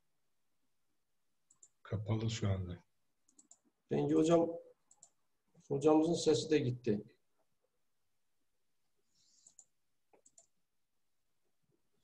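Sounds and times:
person speaking: 3.7s - 4.8s.

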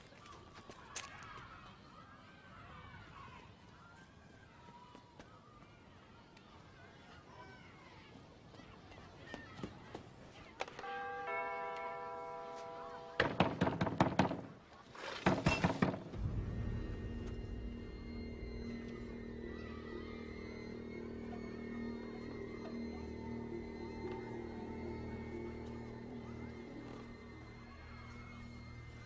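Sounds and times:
low music drone: 16.2s - 29.0s.

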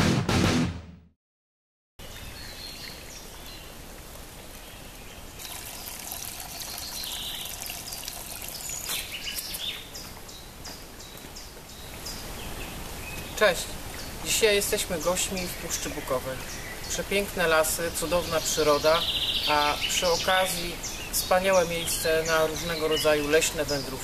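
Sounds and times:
stream trickling over stones: 2.0s - 9.9s.

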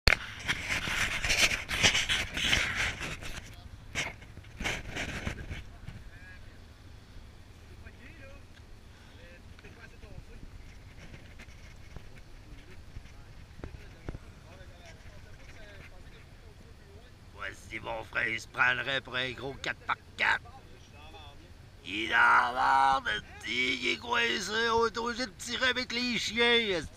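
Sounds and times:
hand rustling on camera: 0.2s - 5.7s
faint distant voices: 0.7s - 26.9s.

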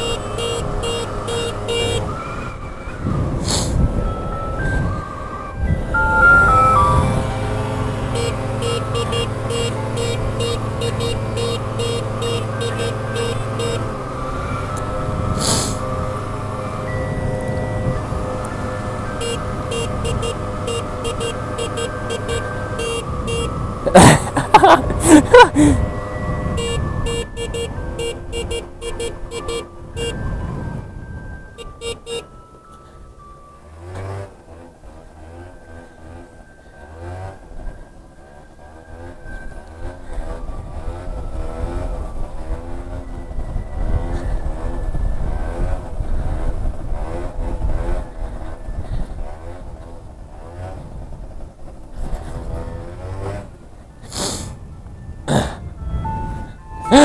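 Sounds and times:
music with sustained tones: 2.0s - 23.8s, 54.7s - 57.0s
loud warbling sound: 5.8s - 8.0s.

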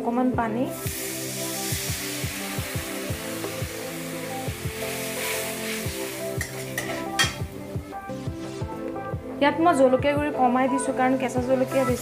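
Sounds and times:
water poured into hot pan: 0.7s - 7.2s
oil hissing and sizzling: 0.7s - 8.6s, 11.2s - 12.0s
music with low beat: 1.7s - 4.9s, 5.8s - 9.4s.

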